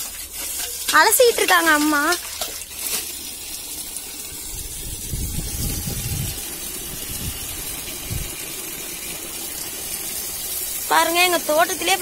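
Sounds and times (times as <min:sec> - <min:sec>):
water gushing into a bucket: 0:00.0 - 0:12.0.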